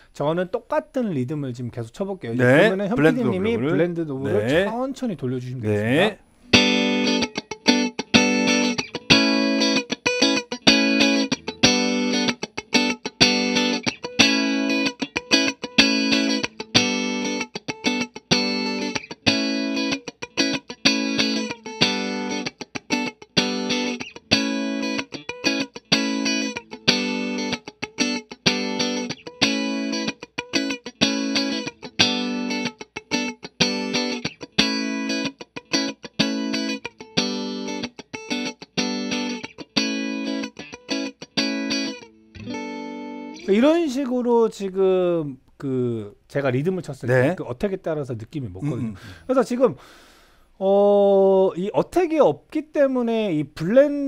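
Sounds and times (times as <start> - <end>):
electric guitar strumming chords: 2.4 - 4.7, 6.4 - 43.6.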